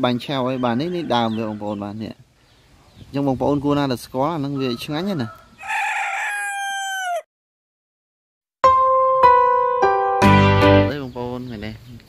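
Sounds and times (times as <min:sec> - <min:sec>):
rooster crowing: 0:04.4 - 0:07.3.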